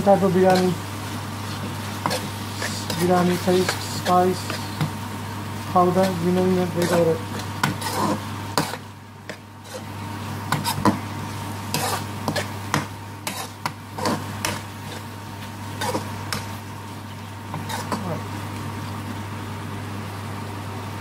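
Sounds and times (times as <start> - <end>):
metal spoon scraping a wok: 2.0 - 4.9, 6.8 - 8.8, 9.6 - 9.9, 10.5 - 11.0, 11.7 - 12.6, 13.2 - 15.1, 15.7 - 16.5, 17.5 - 18.2.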